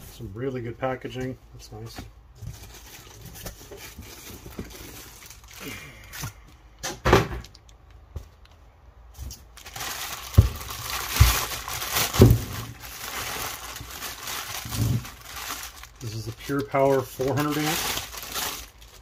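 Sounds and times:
plastic bag crinkling: 2.5s - 6.3s, 9.2s - 19.0s.

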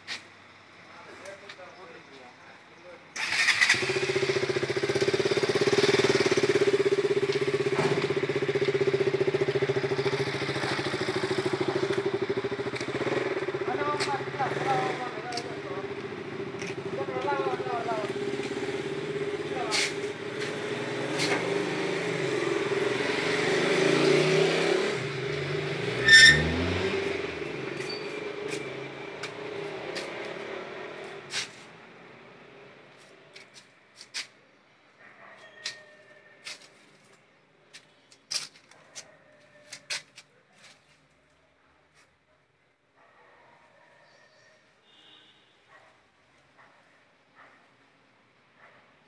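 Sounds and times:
short high squeak: 26.0s - 26.6s, 27.8s - 28.3s.

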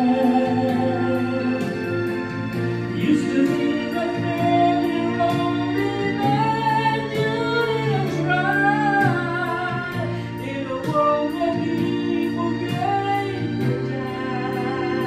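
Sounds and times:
backing track with beat: 0.0s - 15.0s
man singing into microphone: 0.0s - 15.0s.

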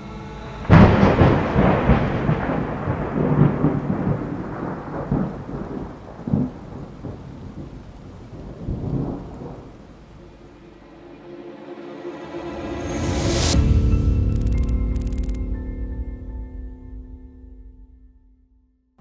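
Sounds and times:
rain: 0.6s - 12.7s
thunder crack and rumble: 0.7s - 9.8s.

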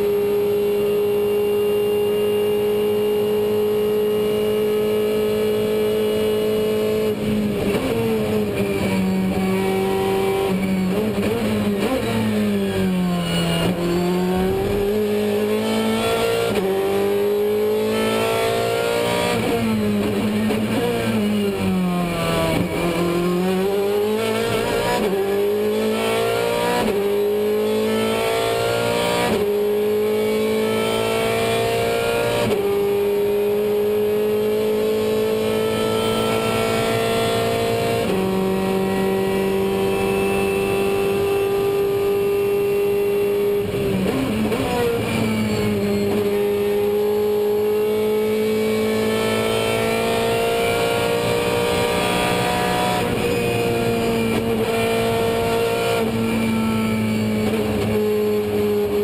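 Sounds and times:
race car engine accelerating: 0.0s - 59.0s.

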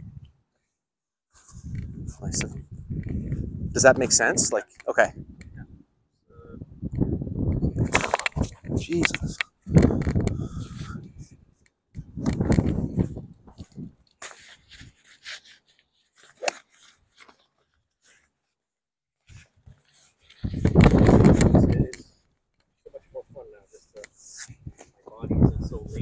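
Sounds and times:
wind buffeting microphone: 1.5s - 4.4s, 5.0s - 5.8s, 6.4s - 14.0s, 20.4s - 22.2s, 24.5s - 26.0s
golf club striking ball: 16.4s - 16.6s.

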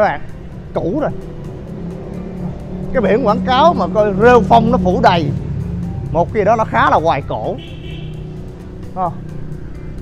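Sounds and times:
background music with held notes: 0.0s - 10.0s
motorbike engine passing: 0.5s - 10.0s.

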